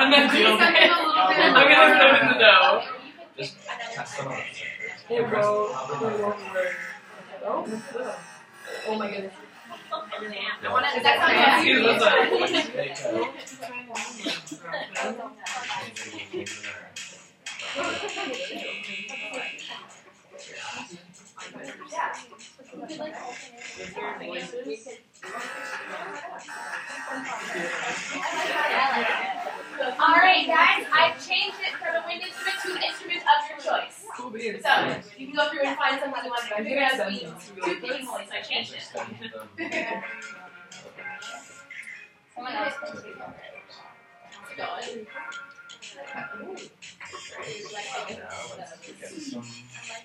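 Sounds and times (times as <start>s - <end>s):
overlapping voices talking: 0.0s - 50.0s
music playing: 3.4s - 50.0s.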